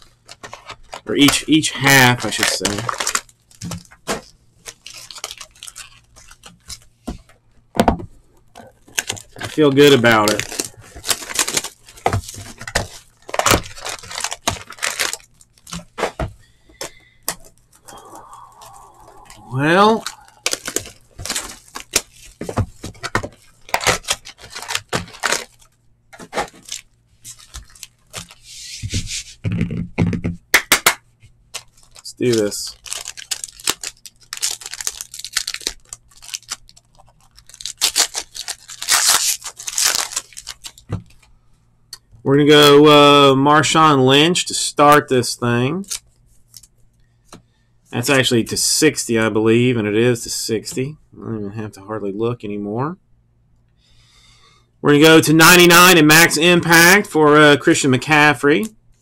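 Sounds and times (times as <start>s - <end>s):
packaging crinkling and tearing: 0.0s - 7.0s, 8.6s - 28.5s, 30.6s - 41.3s
cards clicking and slapping: 30.5s - 31.0s.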